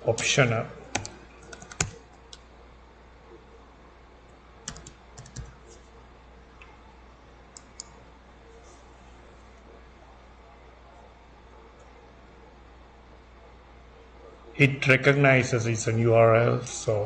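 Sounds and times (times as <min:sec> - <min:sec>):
low steady hum: 0:00.0 - 0:17.0
keyboard keystrokes: 0:00.9 - 0:02.4, 0:04.7 - 0:05.5.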